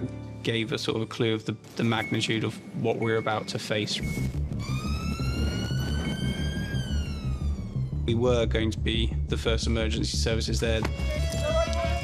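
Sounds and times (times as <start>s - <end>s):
police siren wailing: 4.6s - 8.2s.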